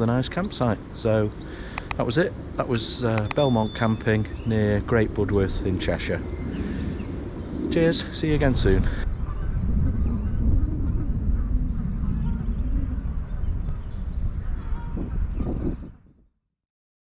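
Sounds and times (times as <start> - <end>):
wind rumbling on microphone: 4.1 - 16.3.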